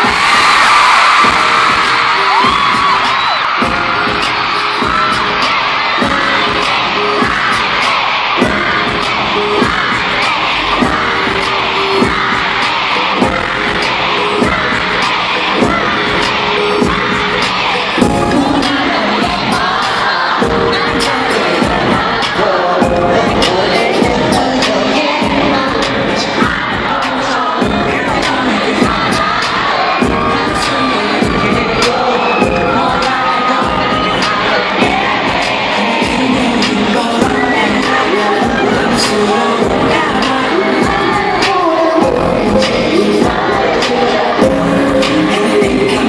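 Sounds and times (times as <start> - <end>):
crowd cheering and screaming: 0.0 - 46.0
pop music with steady beat: 0.0 - 46.0.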